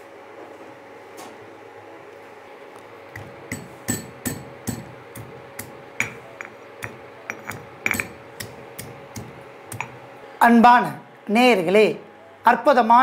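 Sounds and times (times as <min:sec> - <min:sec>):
stone pestle pounding in mortar: 0:03.2 - 0:10.0.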